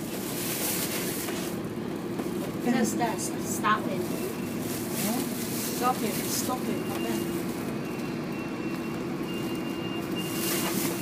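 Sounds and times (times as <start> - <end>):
bus engine humming: 0.0 - 11.0.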